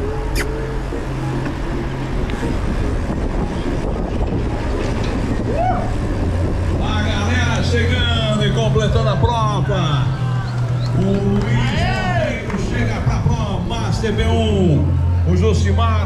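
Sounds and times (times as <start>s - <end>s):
low rumble of wind and tyres: 0.0s - 16.0s
short voice call: 0.3s - 0.6s
several voices: 6.8s - 16.0s.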